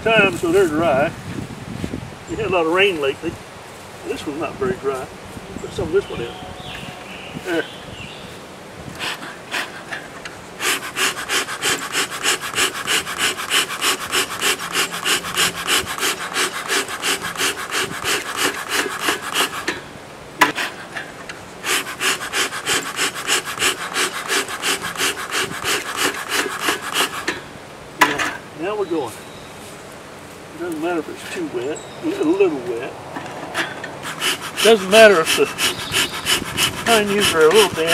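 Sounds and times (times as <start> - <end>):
bellows puffing air: 8.9 - 19.8, 20.4 - 28.4, 33.3 - 37.9.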